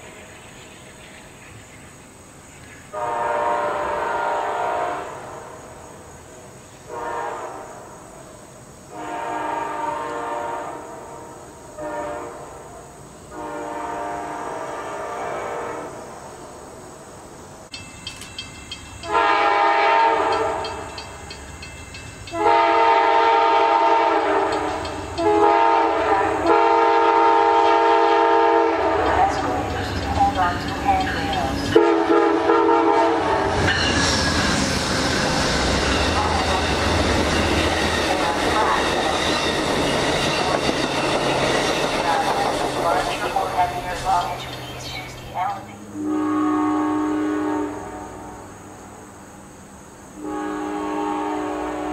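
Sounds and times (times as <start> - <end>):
train wheels rumbling on rails: 0.0 - 46.3
train horn blasts: 2.9 - 5.8, 6.9 - 8.1, 8.9 - 16.0, 19.0 - 21.0, 22.3 - 29.8, 31.7 - 34.0, 45.8 - 48.5, 50.2 - 51.9.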